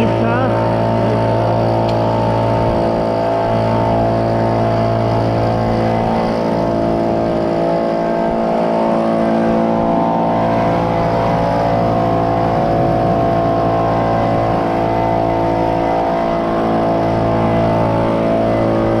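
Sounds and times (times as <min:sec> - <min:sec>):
leaf blower running: 0:00.0 - 0:19.0.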